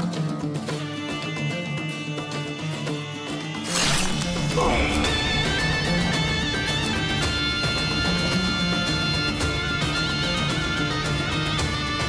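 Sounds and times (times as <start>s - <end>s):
swishing strike effect: 3.6s - 7.3s
dramatic soundtrack music: 3.6s - 11.4s
short grunt: 3.9s - 5.9s.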